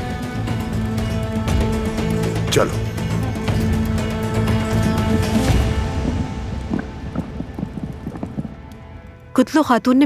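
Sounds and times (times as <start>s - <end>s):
background music: 0.0s - 10.0s
horse hooves clopping: 4.6s - 9.6s.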